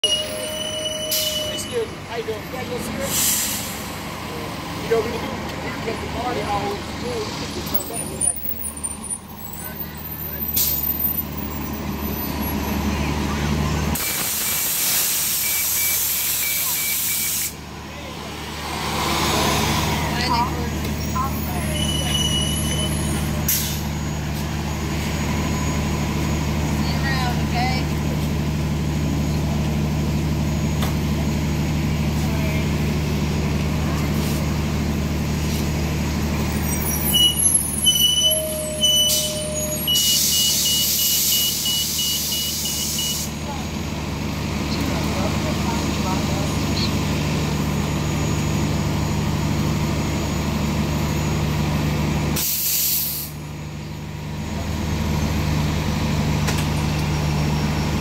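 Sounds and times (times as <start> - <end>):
bus engine idling: 0.0 - 58.0
compressed air hiss: 14.0 - 17.6, 52.4 - 53.4
faint beeping tone: 21.6 - 23.2.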